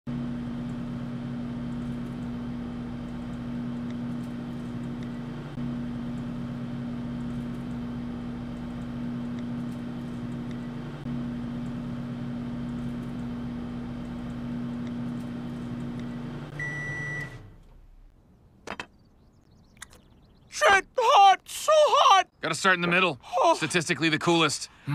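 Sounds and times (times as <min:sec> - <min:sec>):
microwave oven humming: 0:00.1 - 0:18.2
microwave beep: 0:15.8 - 0:17.6.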